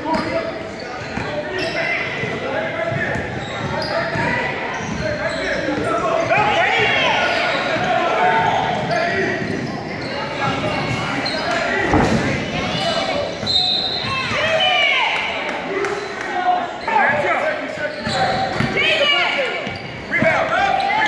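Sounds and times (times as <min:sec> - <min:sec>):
sneakers squeaking: 0:00.0 - 0:14.8, 0:16.0 - 0:21.0
loud thud: 0:11.8 - 0:12.6.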